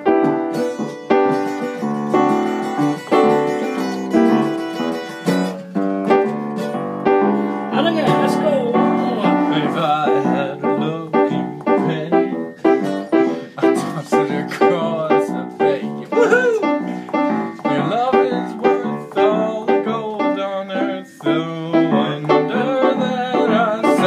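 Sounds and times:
acoustic guitar strumming: 0:00.0 - 0:24.0
electric keyboard chords: 0:00.0 - 0:24.0.

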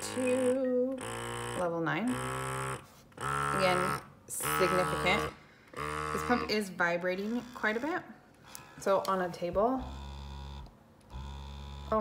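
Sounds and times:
breast pump motor humming: 0:00.0 - 0:12.0.

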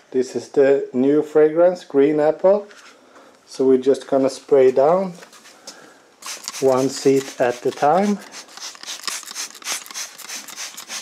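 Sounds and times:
spray bottle hissing sprays: 0:06.2 - 0:11.0.

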